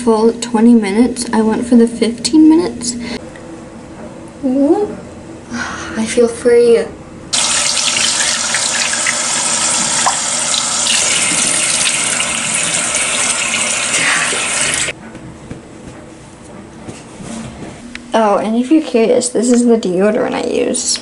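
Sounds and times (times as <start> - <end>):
face being rinsed by hand: 7.3 - 14.9
tap water splashing into basin: 7.4 - 14.9.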